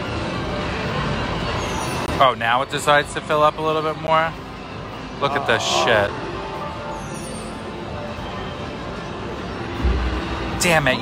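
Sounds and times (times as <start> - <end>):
murmuring voices: 5.2 - 6.2.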